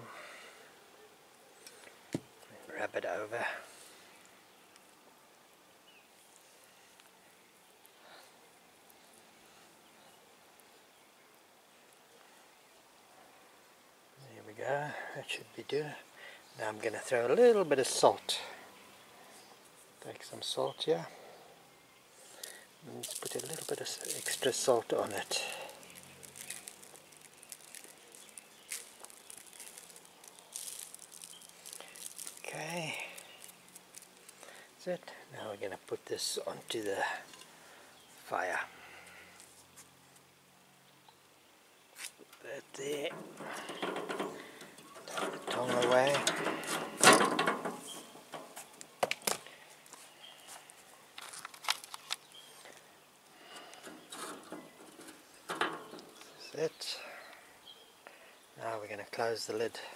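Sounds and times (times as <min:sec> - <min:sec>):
salt grains pattering: 0:22.3 - 0:34.6.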